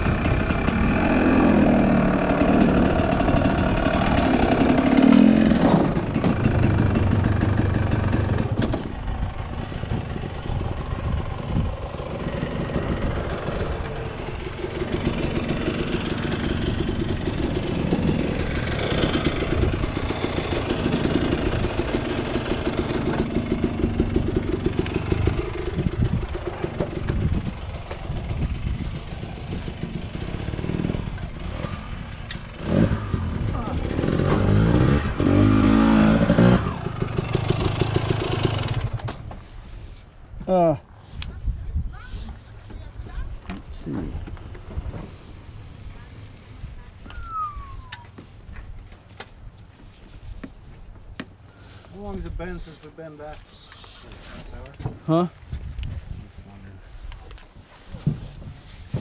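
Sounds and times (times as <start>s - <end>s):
dirt bike engine idling and revving: 0.0s - 41.4s.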